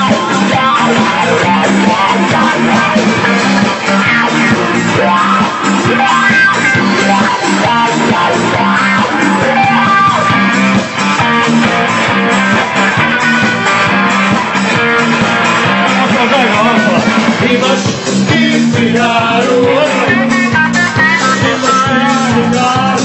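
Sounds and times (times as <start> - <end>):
bass guitar: 0.0 - 23.0
drums: 0.0 - 23.0
electric guitar: 0.0 - 23.0.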